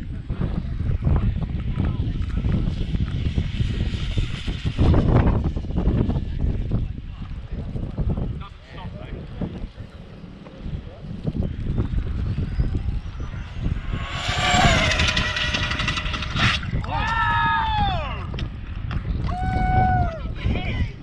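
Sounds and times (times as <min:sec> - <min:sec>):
electric toy car motor whine: 0:13.1 - 0:16.7.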